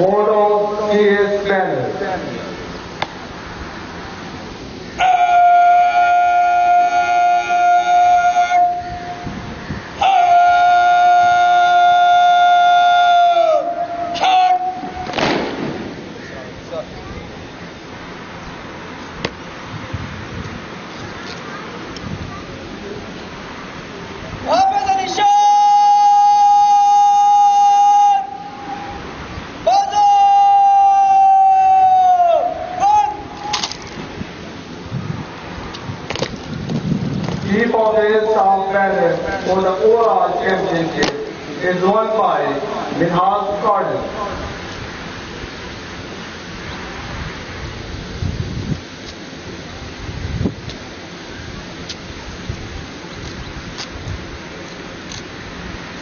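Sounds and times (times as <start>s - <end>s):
bugle call: 5.0s - 9.3s, 10.0s - 15.4s, 24.5s - 29.1s, 29.7s - 33.7s
commander shouting drill command: 10.0s - 15.0s, 24.4s - 28.9s, 29.7s - 33.5s, 37.5s - 44.6s
crash of noise from ranks: 15.0s - 16.2s.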